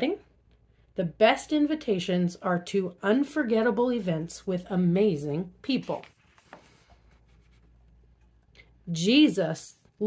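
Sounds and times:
paper page rustle: 0:05.8 - 0:08.0.

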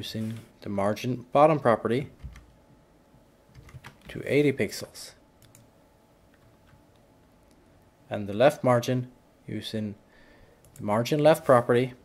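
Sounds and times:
computer keyboard keystrokes: 0:03.5 - 0:04.2, 0:05.4 - 0:05.7.

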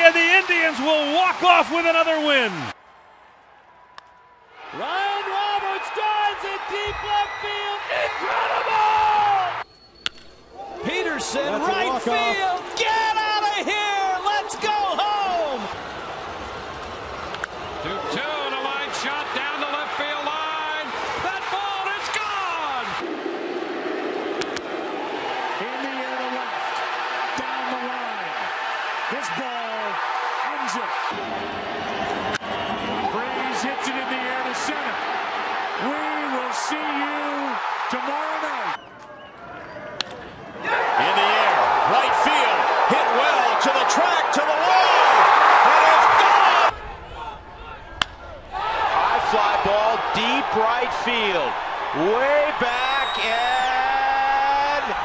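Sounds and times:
announcer's voice: 0:00.0 - 0:02.6
ballpark crowd noise: 0:00.0 - 0:55.0.

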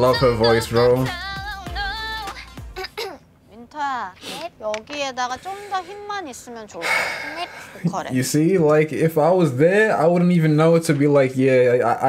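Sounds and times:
woman talking: 0:03.5 - 0:08.2.

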